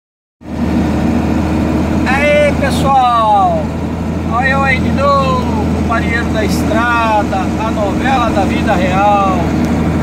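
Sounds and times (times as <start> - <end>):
truck engine droning: 0.4 - 10.0.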